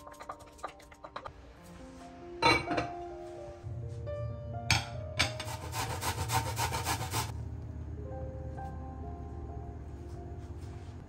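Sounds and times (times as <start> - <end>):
soft background music: 0.0 - 11.0
grating on a metal grater: 5.4 - 7.3.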